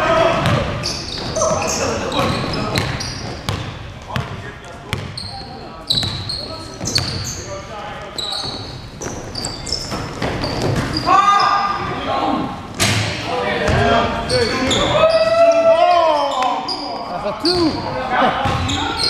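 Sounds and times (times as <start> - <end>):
sneakers squeaking: 0.3 - 19.0
players shouting: 13.3 - 19.0.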